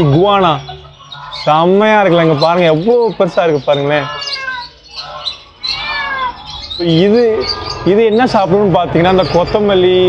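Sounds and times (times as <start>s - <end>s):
caged bird calling: 0.0s - 10.0s.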